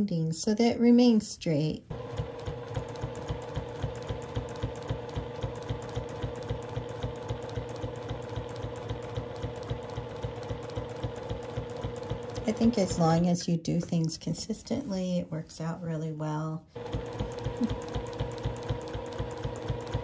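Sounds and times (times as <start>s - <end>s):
sewing machine running: 1.9s - 13.2s, 16.8s - 20.0s.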